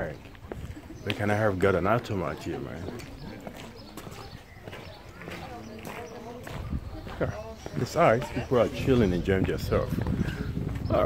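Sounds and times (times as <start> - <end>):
light sharp footsteps: 0.0 - 11.0.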